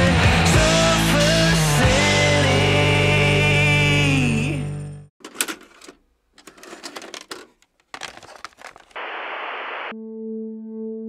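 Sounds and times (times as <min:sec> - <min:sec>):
cassette pushed into slot: 0:05.2 - 0:09.0
tape mechanism clicks and clunks: 0:05.2 - 0:09.0.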